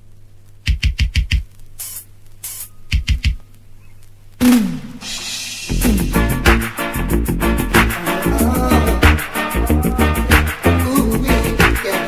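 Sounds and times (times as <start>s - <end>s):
faint steady hum: 0.0s - 6.3s
hissing cymbal strokes: 4.4s - 6.9s
deep sharp drum hits: 4.4s - 9.3s.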